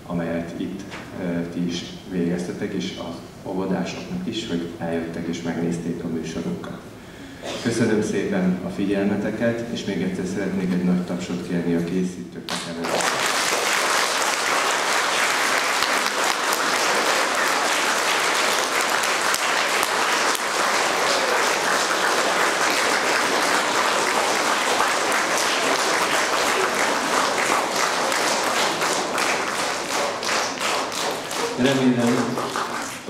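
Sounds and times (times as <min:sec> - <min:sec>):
audience applauding: 0:12.8 - 0:33.0.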